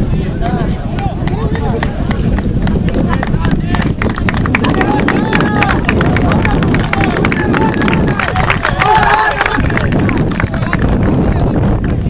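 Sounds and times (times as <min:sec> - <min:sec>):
men calling and shouting: 0:00.0 - 0:11.6.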